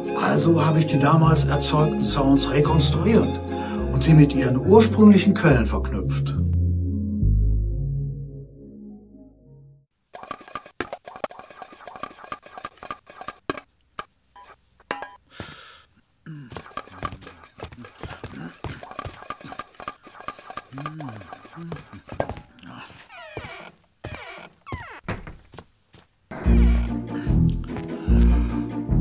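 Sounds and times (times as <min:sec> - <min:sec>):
rapid clicks and clinks: 0:10.2 - 0:15.2, 0:16.5 - 0:22.4.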